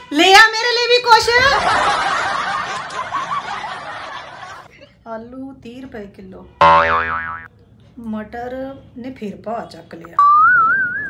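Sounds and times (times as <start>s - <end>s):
canned audience laughter: 1.5s - 4.7s
cartoon boing sound effect: 6.6s - 7.5s, 10.2s - 11.0s.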